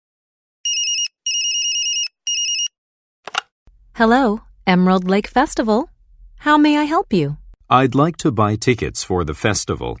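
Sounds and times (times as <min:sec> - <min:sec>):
electronic telephone ringing: 0:00.6 - 0:02.8
telephone click: 0:03.3 - 0:03.5.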